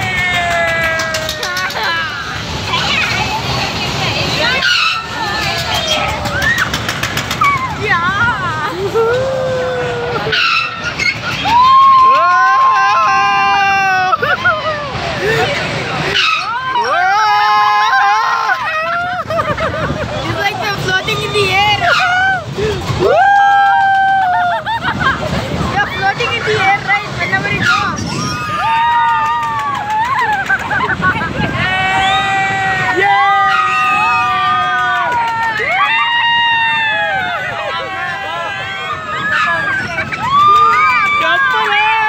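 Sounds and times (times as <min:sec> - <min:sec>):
riders shouting and shrieking: 0:00.0 - 0:42.0.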